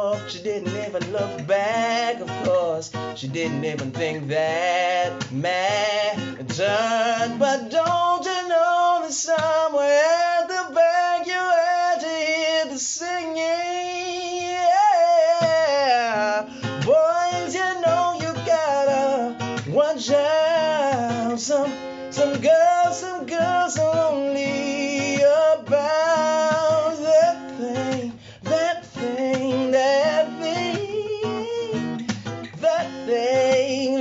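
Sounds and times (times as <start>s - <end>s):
acoustic guitar strummed and picked: 0.0s - 34.0s
man singing: 0.0s - 34.0s.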